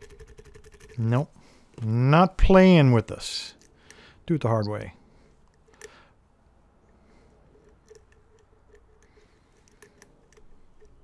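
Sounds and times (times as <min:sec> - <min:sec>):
metallic clicks of lock picking: 0:03.5 - 0:04.0, 0:05.4 - 0:06.0, 0:07.6 - 0:11.0.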